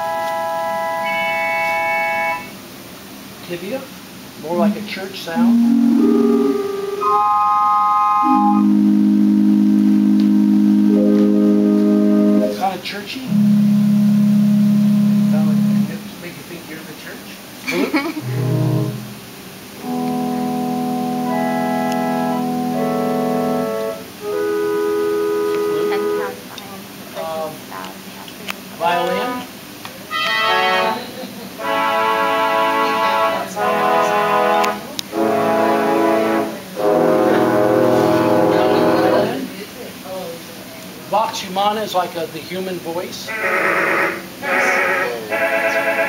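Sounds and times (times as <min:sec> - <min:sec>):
pipe organ playing chords: 0:00.0 - 0:02.6, 0:05.3 - 0:16.3, 0:18.2 - 0:26.5, 0:30.1 - 0:39.5, 0:43.3 - 0:46.0.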